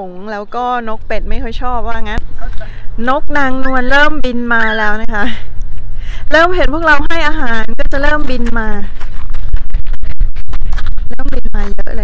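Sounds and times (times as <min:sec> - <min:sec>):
deep rumble: 0:01.2 - 0:12.0
scratchy crackling: 0:07.0 - 0:12.0.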